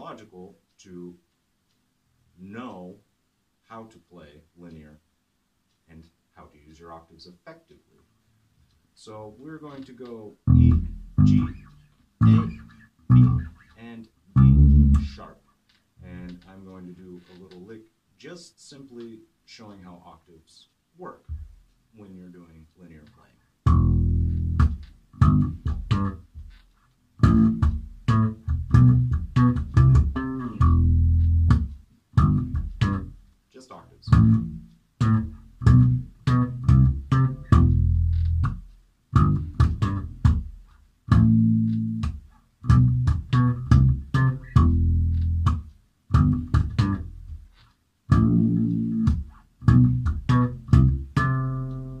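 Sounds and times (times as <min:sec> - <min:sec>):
electric bass guitar lick: 0:10.4 - 0:15.4, 0:23.6 - 0:33.2, 0:34.0 - 0:47.5, 0:48.1 - 0:52.0.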